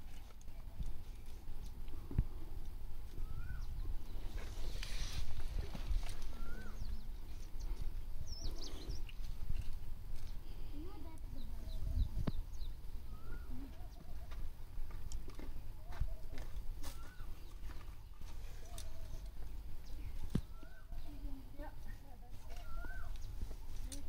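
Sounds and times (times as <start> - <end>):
faint animal calls: 18.3 - 19.6.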